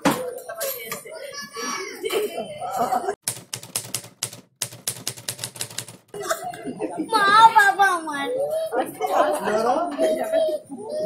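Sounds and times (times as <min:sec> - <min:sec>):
fast sharp clicks: 0:03.2 - 0:06.1.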